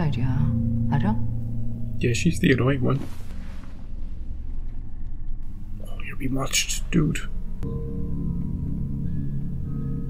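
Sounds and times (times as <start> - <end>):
faint hum: 0.0 - 10.0
low steady rumble: 0.0 - 10.0.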